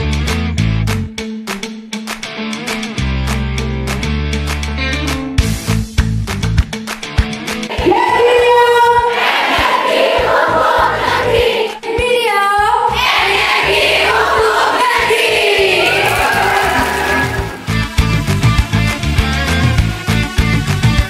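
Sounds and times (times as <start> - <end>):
voices singing together: 9.0 - 17.8.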